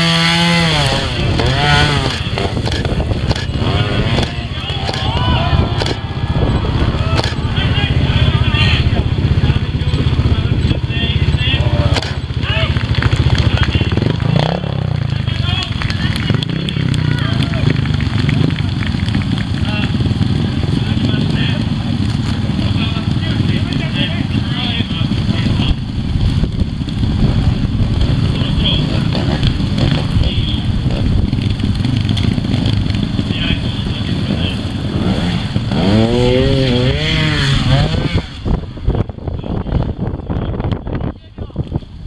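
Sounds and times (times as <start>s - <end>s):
motorcycle engine revving: 0.0s - 41.0s
voices chattering: 0.8s - 41.7s.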